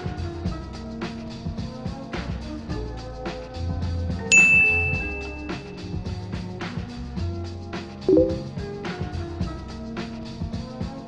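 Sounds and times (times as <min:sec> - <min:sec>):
bright notification ding: 0:04.3 - 0:05.8, 0:08.1 - 0:08.5
background music with steady beat: 0:08.1 - 0:08.6.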